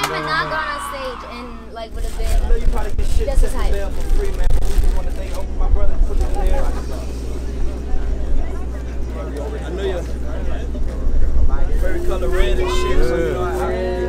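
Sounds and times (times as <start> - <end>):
people talking indistinctly: 0.0 - 14.0
steady low rumble: 0.0 - 14.0.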